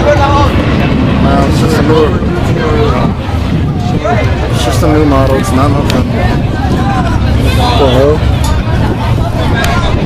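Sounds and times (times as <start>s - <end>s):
drag racing cars at full throttle: 0.0s - 10.0s
people talking: 0.0s - 10.0s.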